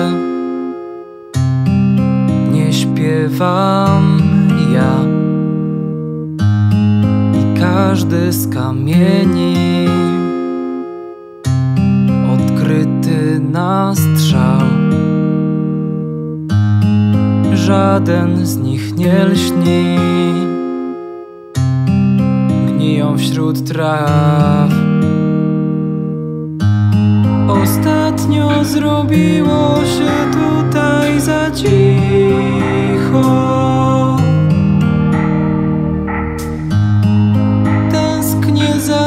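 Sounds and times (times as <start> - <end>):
acoustic guitar chords: 0.0 - 39.0.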